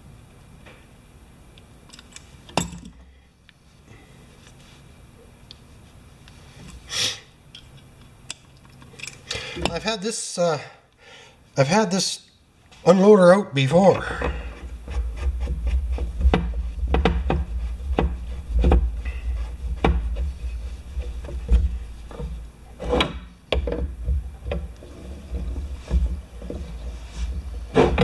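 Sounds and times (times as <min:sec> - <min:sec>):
low rumble of handling: 0:13.9 - 0:28.0.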